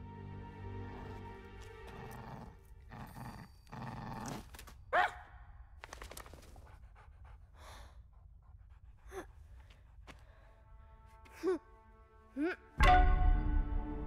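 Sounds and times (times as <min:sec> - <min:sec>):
dog panting and sniffing: 0:06.0 - 0:10.2.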